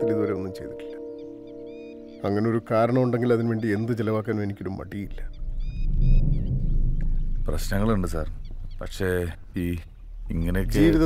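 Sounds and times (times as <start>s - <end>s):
high bird chirps: 0.0s - 10.6s
steady low rumble: 5.0s - 10.3s.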